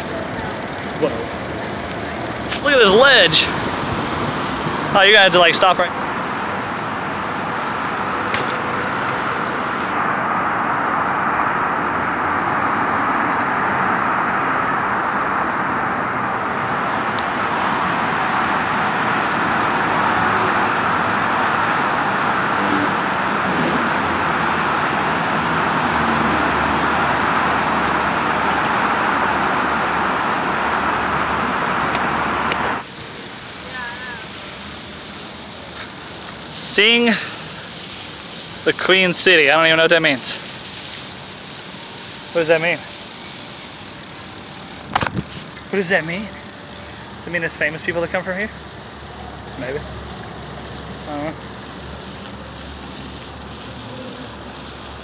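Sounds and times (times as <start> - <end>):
city traffic passing cars: 0.0 - 55.0.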